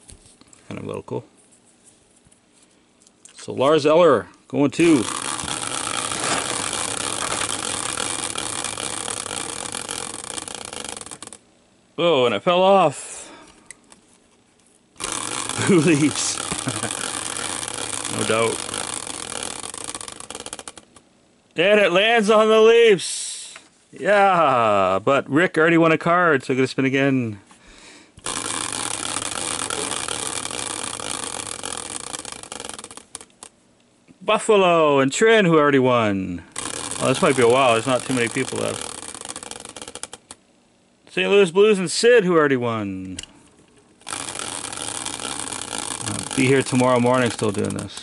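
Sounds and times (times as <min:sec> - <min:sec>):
prize wheel ticking: 0:04.8 - 0:11.4, 0:15.0 - 0:21.0, 0:28.2 - 0:33.5, 0:36.5 - 0:40.4, 0:44.0 - 0:48.0
wheel whirring on bearing: 0:04.8 - 0:11.4, 0:15.0 - 0:21.0, 0:28.2 - 0:33.5, 0:36.5 - 0:40.4, 0:44.0 - 0:48.0.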